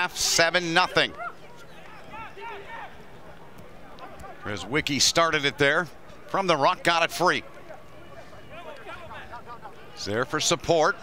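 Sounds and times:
players shouting calls: 0.0s - 11.0s
stadium background noise: 0.0s - 11.0s.

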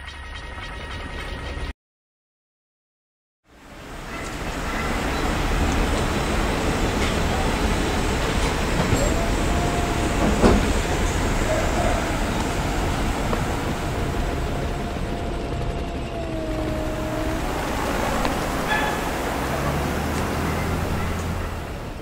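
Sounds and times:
rumble of passing vehicles: 3.5s - 22.0s
faint steady whine: 3.6s - 21.9s.

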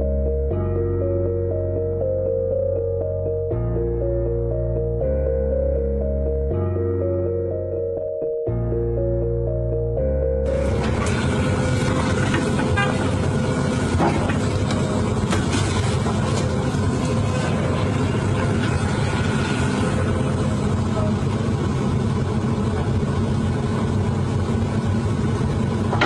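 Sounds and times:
diesel engine idling: 8.8s - 26.0s
knocks and clatter: 13.9s - 17.2s.

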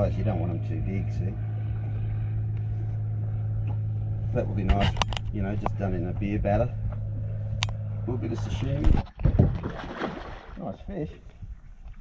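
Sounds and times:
boat engine idling: 0.0s - 9.0s.

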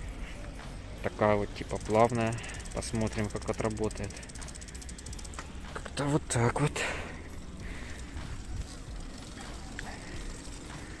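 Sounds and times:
bicycle rolling on asphalt: 0.0s - 11.0s.

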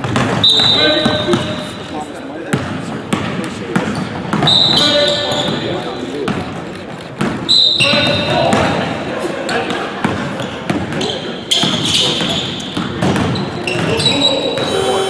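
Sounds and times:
basketball bouncing on hardwood floor: 0.0s - 1.6s, 2.5s - 5.6s, 11.6s - 14.7s
sneakers squealing on court: 0.0s - 8.9s, 10.4s - 15.0s.

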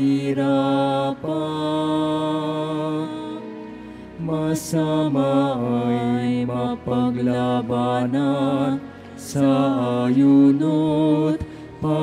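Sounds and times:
organ chords: 0.0s - 12.0s
person singing a hymn: 0.0s - 12.0s.

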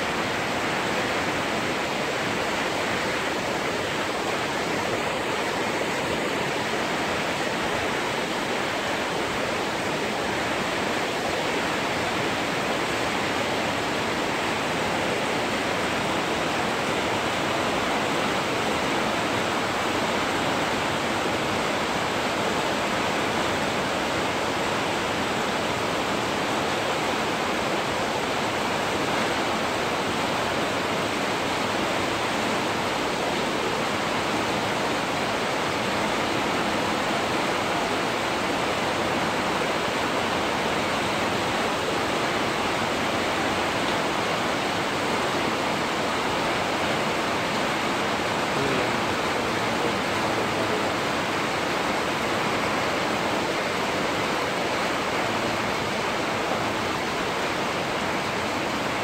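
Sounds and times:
heavy rain: 0.0s - 59.0s.

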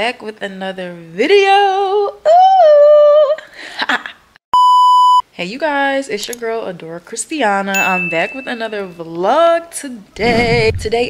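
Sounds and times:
electronic test-tone beep: 4.6s - 5.2s.

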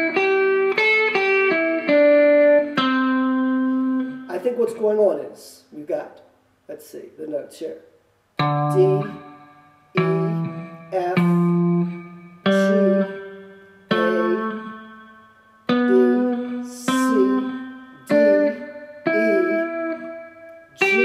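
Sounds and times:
electric guitar picking single notes: 0.0s - 4.8s, 8.3s - 21.0s.

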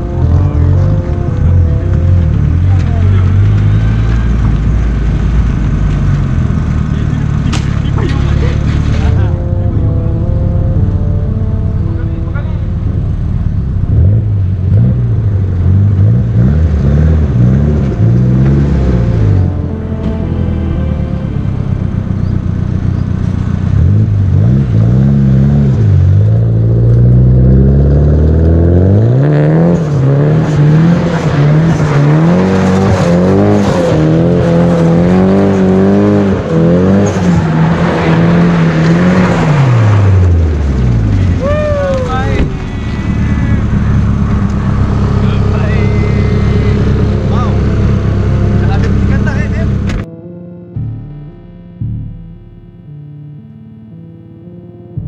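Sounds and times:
car engine revving hard: 13.8s - 20.3s, 20.9s - 50.1s.

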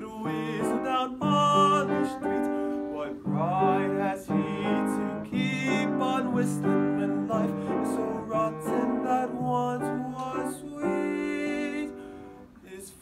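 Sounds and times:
person singing: 0.0s - 13.0s
piano notes and chords: 0.0s - 13.0s.

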